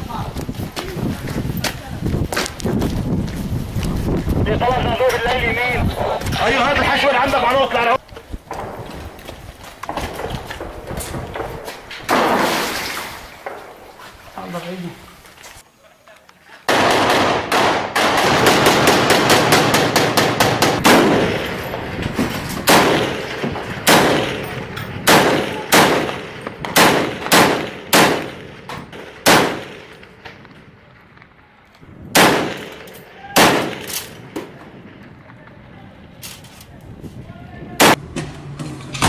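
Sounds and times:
automatic gunfire: 16.7 - 21.5, 22.7 - 24.4, 25.1 - 30.0, 32.2 - 34.2.

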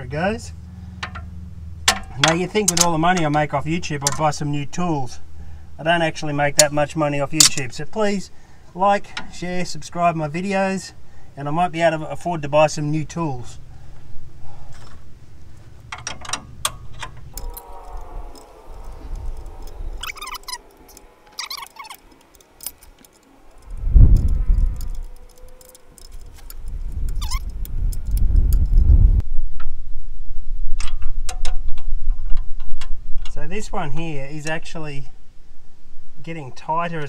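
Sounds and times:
metal tools clinking: 15.8 - 28.2.

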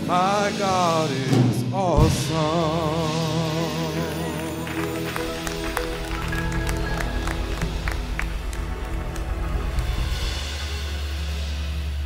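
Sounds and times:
sharp drum hits: 1.2 - 3.4
band playing sustained low chords: 2.0 - 12.0.

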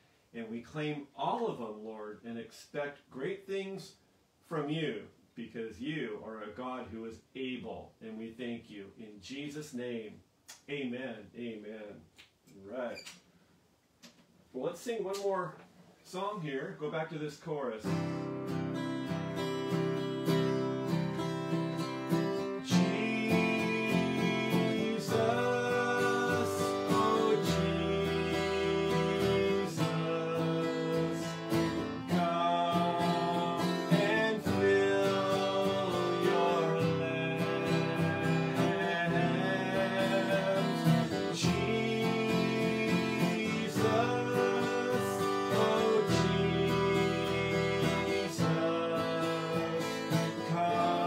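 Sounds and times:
strummed acoustic guitar: 17.8 - 51.0
man singing: 22.4 - 51.0.

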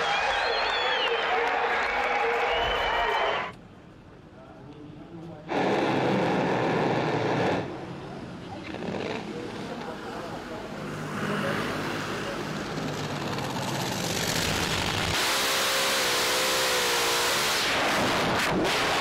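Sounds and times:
loud engine and wind noise: 10.6 - 18.6
dragster engine and crash: 17.5 - 19.0.

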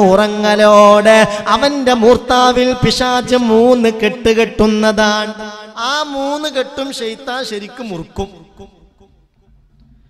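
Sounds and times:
man chanting melodically: 0.0 - 9.2.

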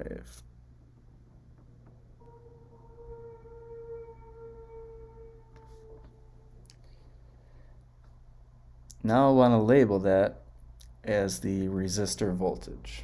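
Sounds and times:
low electrical hum: 0.0 - 13.0
faint pitched tone: 2.2 - 7.7.

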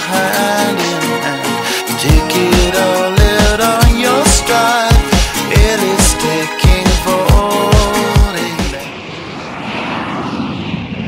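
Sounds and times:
rushing whoosh: 8.4 - 11.0.

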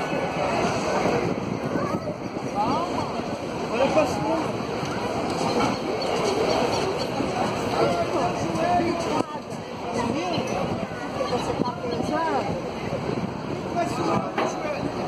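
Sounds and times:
outdoor background noise: 0.0 - 15.0
people talking at once: 0.0 - 15.0.

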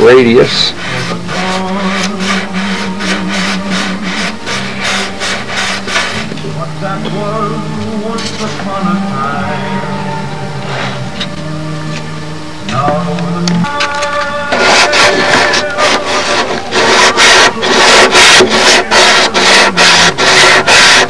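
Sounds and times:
hand sanding strokes on wood: 0.0 - 6.3, 14.5 - 21.0
background music: 0.0 - 21.0.

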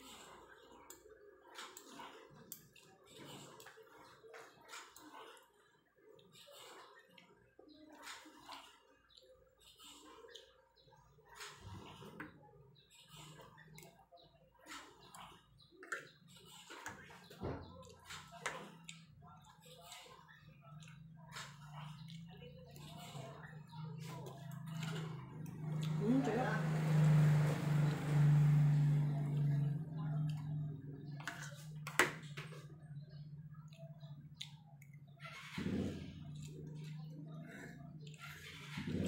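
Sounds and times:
food being chewed: 0.0 - 26.0, 26.7 - 38.8.

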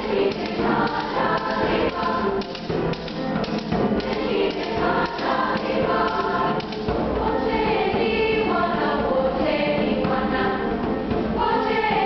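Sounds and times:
girls choir singing: 0.0 - 12.0.

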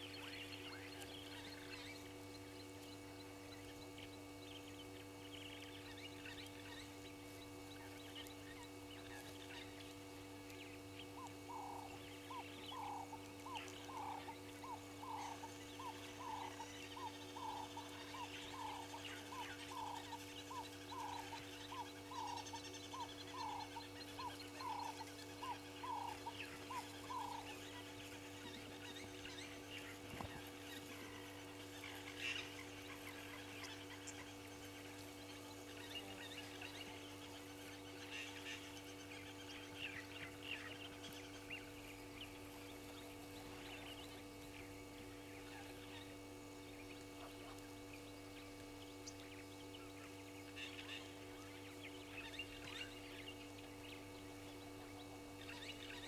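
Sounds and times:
low hum: 0.0 - 56.0.

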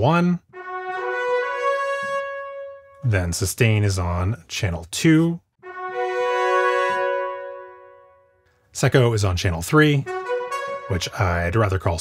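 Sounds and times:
trumpet section rising line: 0.5 - 3.2, 5.6 - 8.4, 9.8 - 11.6.

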